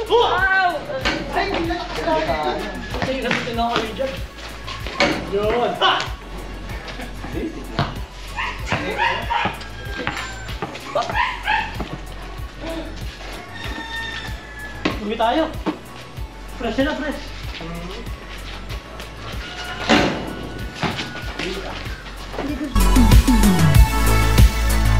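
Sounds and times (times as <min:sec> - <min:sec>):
players calling out: 0:00.0 - 0:15.9
basketball bouncing on concrete: 0:02.9 - 0:03.9, 0:07.8 - 0:08.0, 0:08.6 - 0:12.1, 0:14.8 - 0:15.8.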